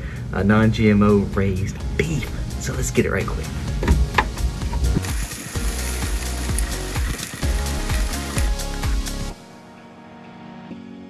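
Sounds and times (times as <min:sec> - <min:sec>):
meat sizzling on grill: 0:03.7 - 0:09.4
sharp knocks: 0:03.8 - 0:05.0.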